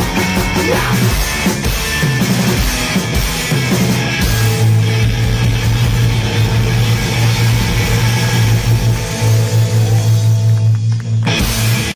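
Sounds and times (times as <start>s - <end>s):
distorted electric guitars: 0.0s - 11.9s
live rock band playing: 0.0s - 11.9s
droning low bass note: 4.2s - 10.8s.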